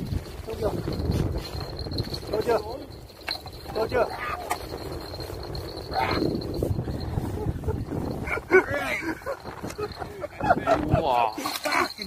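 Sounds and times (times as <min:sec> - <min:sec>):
wind rumbling on microphone: 0:00.0 - 0:12.0
high wavering vocal cries: 0:04.0 - 0:04.6, 0:05.8 - 0:06.5.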